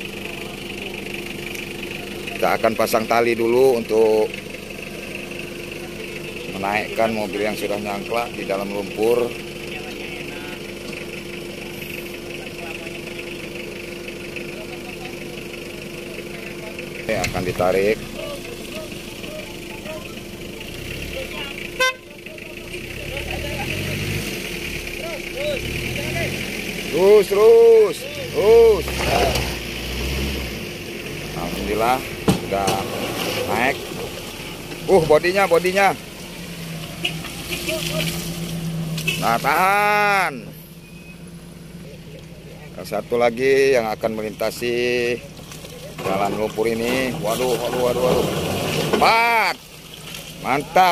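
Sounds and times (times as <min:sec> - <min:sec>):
vehicle engine idling: 0:00.0 - 0:50.9.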